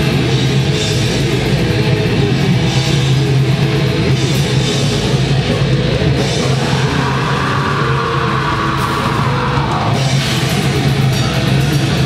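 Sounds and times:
distorted guitars: 0.0 - 12.0
drums: 0.0 - 12.0
heavy low drone: 0.0 - 12.0.

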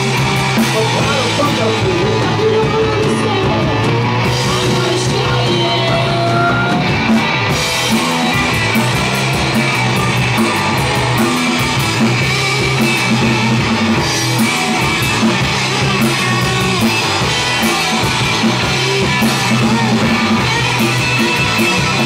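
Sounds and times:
distorted electric guitars: 0.0 - 22.0
drum kit: 0.0 - 22.0.

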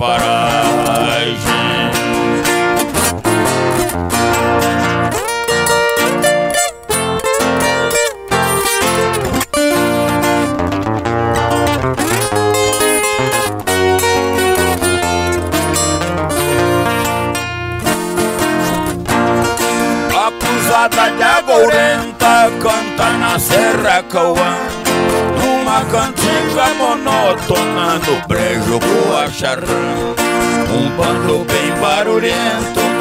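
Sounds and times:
plucked string instruments playing: 0.6 - 33.0.

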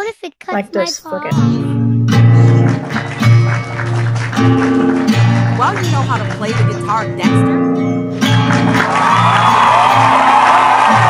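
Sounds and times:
electric guitar notes ringing: 1.2 - 11.0.

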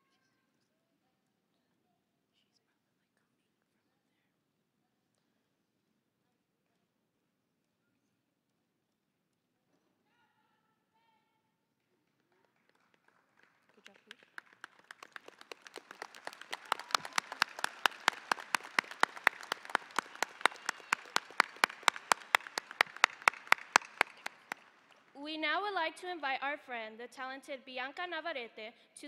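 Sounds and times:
audience clapping in unison: 11.9 - 25.2.

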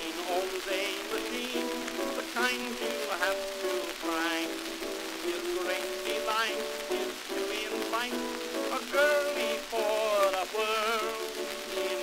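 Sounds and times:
disc crackle and hiss: 0.0 - 12.0
man singing with vibrato: 0.0 - 12.0
piano accompaniment: 0.0 - 12.0.

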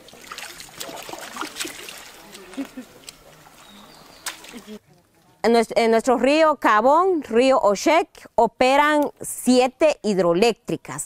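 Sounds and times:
outdoor ambience: 0.0 - 11.0
people talking in background: 0.1 - 5.5.

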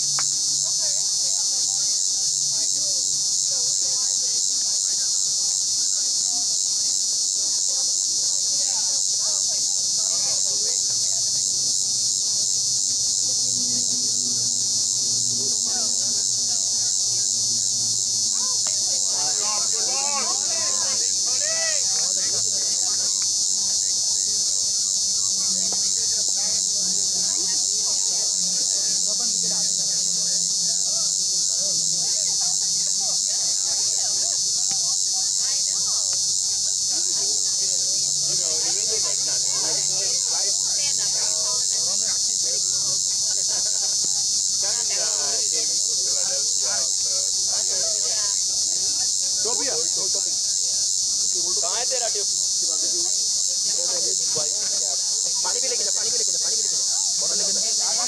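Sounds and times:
insects chorus: 0.0 - 58.0.

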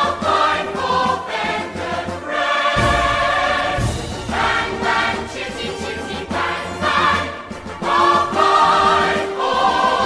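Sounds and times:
crowd singing together: 0.0 - 10.0
loud band playing: 2.8 - 5.4.

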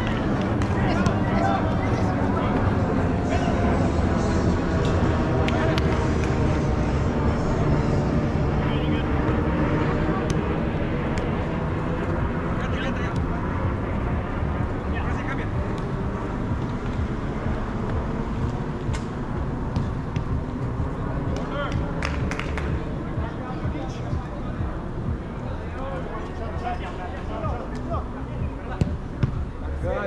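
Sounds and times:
ball being kicked: 19.7 - 20.4, 28.8 - 29.4.

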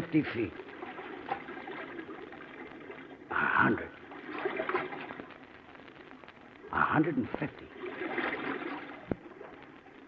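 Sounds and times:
sewer water gurgling: 0.0 - 10.0.

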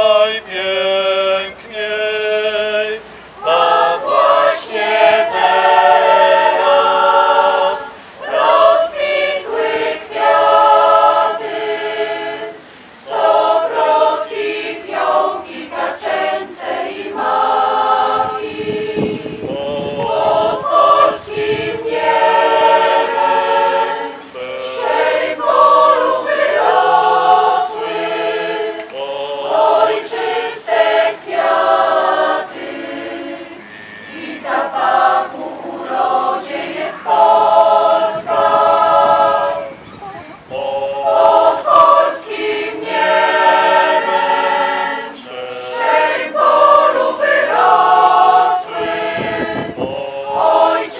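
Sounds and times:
choir singing unaccompanied: 0.0 - 50.9.

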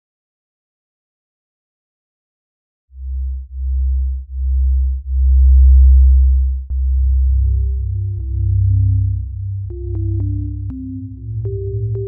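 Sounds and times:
deep bass synth notes: 3.0 - 12.0.

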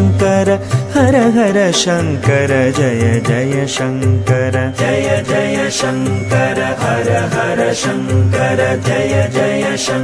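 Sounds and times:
melodic chanting: 0.0 - 10.0
sharp percussion stroke: 0.0 - 10.0
low drone: 2.7 - 10.0.

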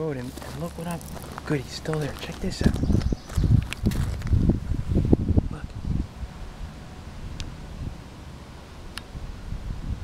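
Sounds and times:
wind rumbling on microphone: 0.0 - 8.1, 8.9 - 10.0.

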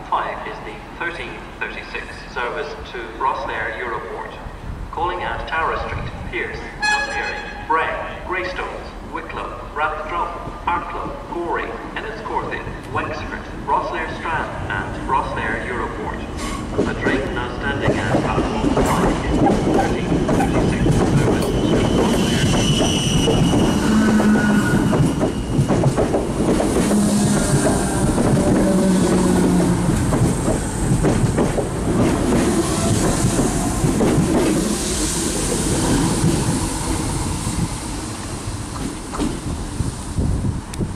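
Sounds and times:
train wheels clickety-clack: 16.4 - 39.6
wheel squeals: 21.4 - 25.7.

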